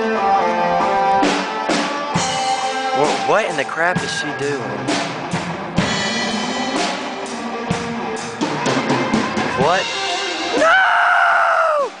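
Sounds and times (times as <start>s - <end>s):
person screaming: 10.5s - 12.0s.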